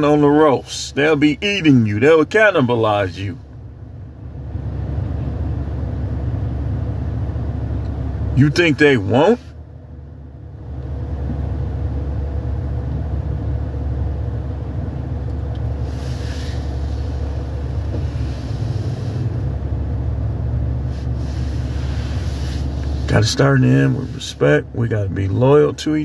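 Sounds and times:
car cabin rumble: 0:00.0 - 0:26.0.

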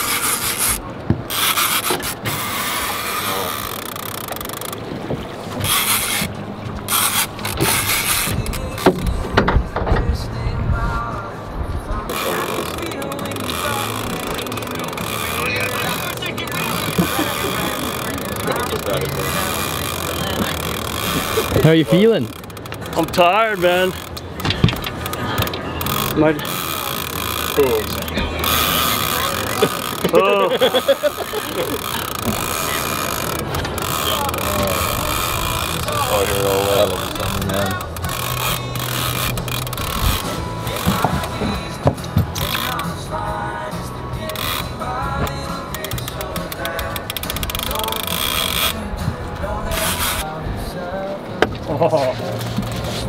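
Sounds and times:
fishing reel gears clicking: 0:00.0 - 0:04.8, 0:05.6 - 0:06.3, 0:06.9 - 0:09.1, 0:12.1 - 0:41.4, 0:42.3 - 0:43.0, 0:44.2 - 0:48.8, 0:49.7 - 0:50.2
background music: 0:05.7 - 0:53.0.

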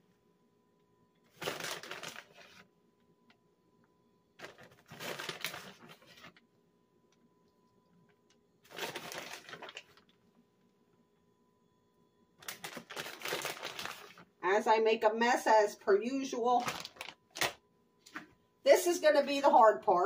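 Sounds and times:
plastic bag crinkling: 0:01.3 - 0:02.7, 0:04.4 - 0:06.4, 0:08.6 - 0:10.3, 0:12.4 - 0:14.4, 0:16.4 - 0:17.6.

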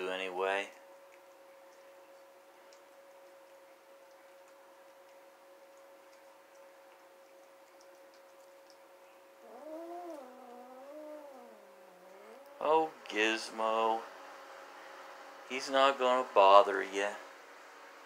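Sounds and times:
cats chewing and licking food: 0:00.0 - 0:17.0
steady faint hum: 0:00.0 - 0:18.0
cat yowling: 0:09.4 - 0:12.7.

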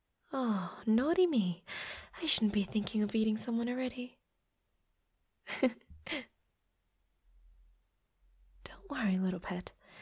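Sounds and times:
woman whispering: 0:08.6 - 0:09.8.

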